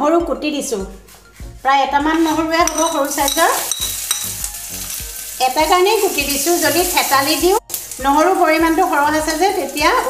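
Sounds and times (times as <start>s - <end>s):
metal spoon stirring: 1.2s - 8.0s
garlic sizzling in hot oil: 1.6s - 10.0s.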